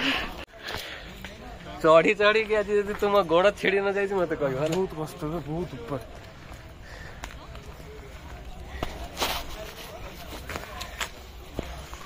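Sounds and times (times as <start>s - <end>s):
faint voices: 0.0s - 12.0s
footstep clicks: 4.2s - 12.0s.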